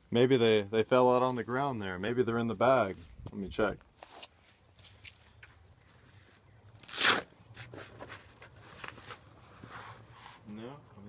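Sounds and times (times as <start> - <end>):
bag crinkle: 6.7 - 7.3.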